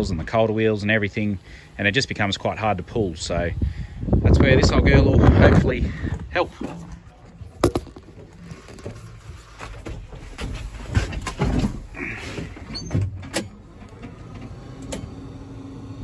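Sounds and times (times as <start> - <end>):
heavy thuds: 7.4 - 8.5
clunks and knocks in tractor cab: 7.5 - 13.6.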